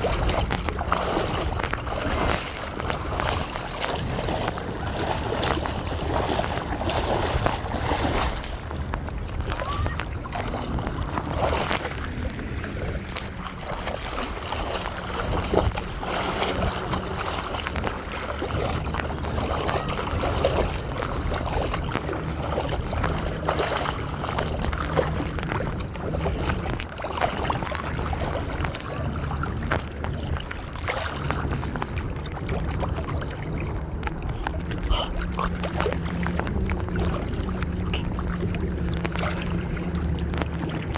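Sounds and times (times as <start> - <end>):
boat engine hum: 0.0 - 40.9
water splashing against hull: 0.0 - 40.9.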